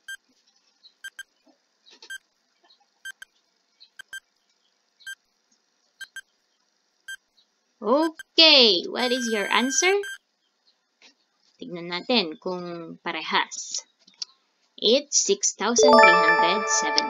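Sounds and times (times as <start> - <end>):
countdown timer tick-beeps: 9.0 - 10.2, 15.8 - 17.0.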